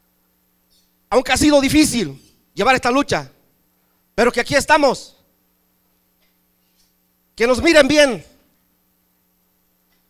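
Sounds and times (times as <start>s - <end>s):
low electrical hum: 0.0s - 10.0s
man speaking: 1.1s - 3.4s, 7.4s - 8.4s.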